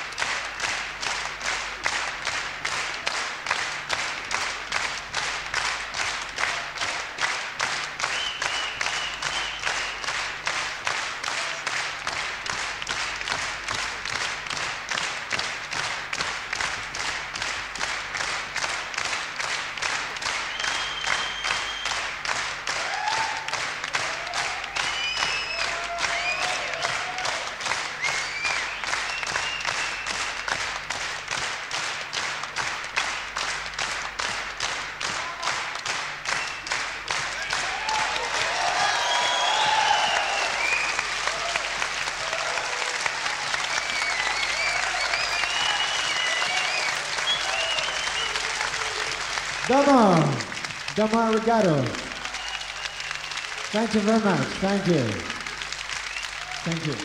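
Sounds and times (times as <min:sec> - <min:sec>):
audience clapping in unison: 0:00.0 - 0:57.0.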